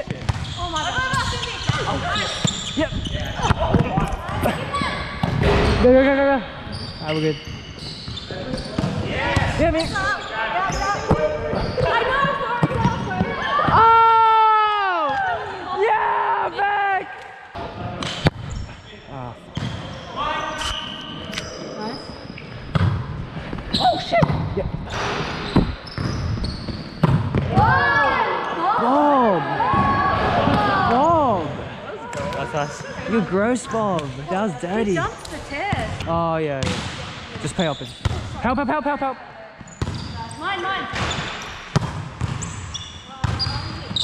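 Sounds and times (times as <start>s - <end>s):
players shouting: 27.4s - 33.8s.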